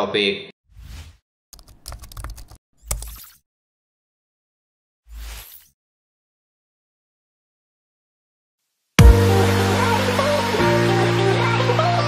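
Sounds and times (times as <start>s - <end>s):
keyboard key clicks: 1.6s - 3.0s.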